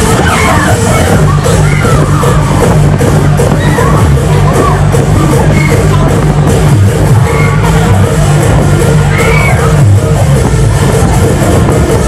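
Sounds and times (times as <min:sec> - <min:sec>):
loud music with heavy bass: 0:00.0 - 0:12.0.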